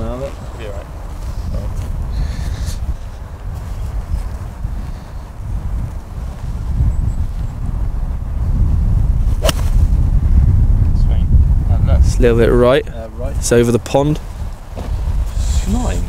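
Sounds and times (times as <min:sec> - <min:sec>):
wind rumbling on microphone: 0:00.0 - 0:16.0
golf club striking ball: 0:09.4 - 0:09.8.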